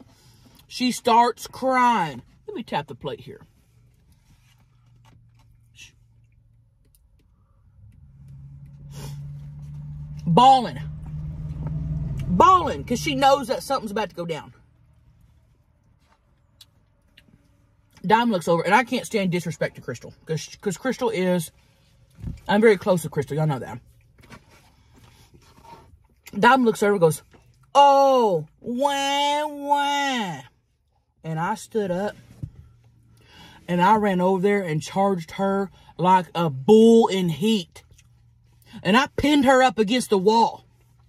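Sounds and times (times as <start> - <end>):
vehicle engine hum: 0.0 - 41.0
chewing: 3.9 - 8.0.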